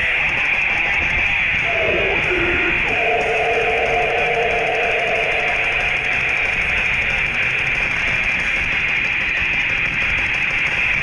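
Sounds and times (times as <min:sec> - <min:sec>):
rock guitar notes held: 0:01.6 - 0:08.2.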